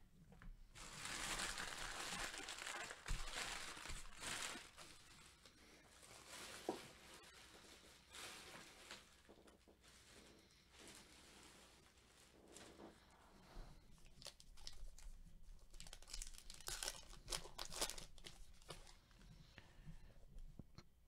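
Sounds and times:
wrapper tearing and crumpling: 0.8 - 9.4, 14.0 - 19.0.

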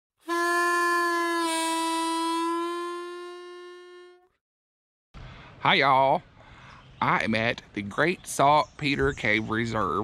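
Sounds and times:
long horn-like note: 0.2 - 4.4.

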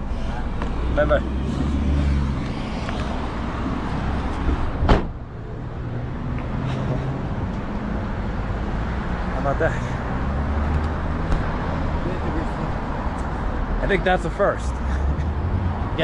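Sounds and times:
street traffic: 0.0 - 16.0
sharp thump: 4.5 - 5.2.

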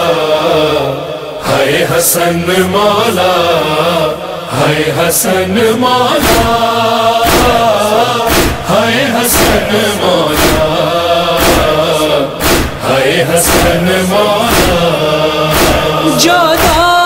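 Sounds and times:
men chanting a lament: 0.0 - 17.0
hands striking the chest: 7.3 - 8.7, 12.4 - 12.8, 14.5 - 14.8, 15.5 - 15.9.

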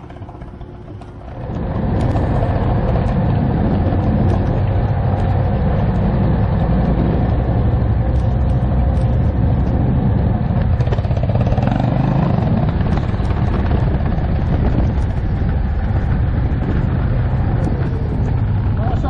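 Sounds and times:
atv engine running: 0.0 - 19.0.

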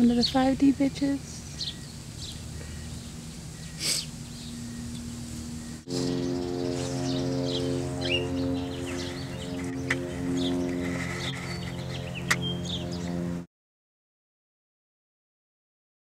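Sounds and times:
bird chirps: 0.0 - 13.2
slow sustained music chords: 1.2 - 13.5.

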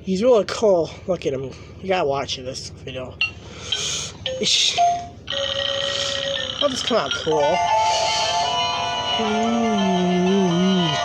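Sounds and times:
electronic tune from toy speaker: 3.2 - 11.0.

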